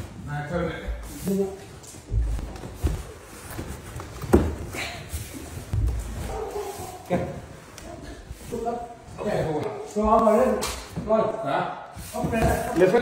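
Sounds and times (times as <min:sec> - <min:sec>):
dull thumps of furniture carried: 0:02.0 - 0:04.8, 0:12.1 - 0:13.0
heavy footsteps on stairs: 0:02.0 - 0:07.0.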